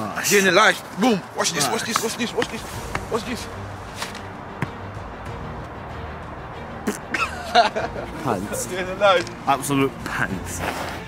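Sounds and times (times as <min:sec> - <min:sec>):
faint background music: 0:00.0 - 0:11.0
football being kicked: 0:04.6 - 0:04.9.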